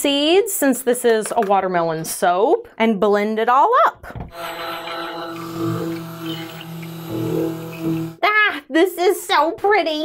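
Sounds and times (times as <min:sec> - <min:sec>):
stick blender humming: 0:04.3 - 0:08.2.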